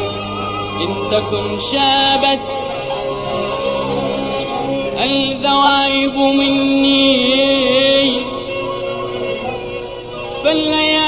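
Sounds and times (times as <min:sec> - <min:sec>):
man singing long note: 0:00.0 - 0:11.0
song accompaniment: 0:00.0 - 0:11.0.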